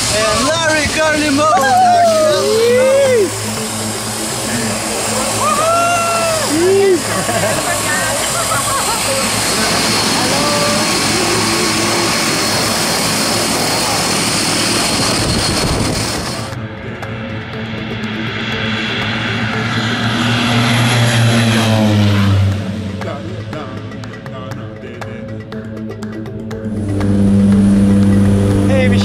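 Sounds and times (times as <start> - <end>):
plane taking off: 0.0 - 24.8, 25.8 - 29.0
high whine: 0.0 - 29.0
propeller plane engine roar: 0.0 - 29.0.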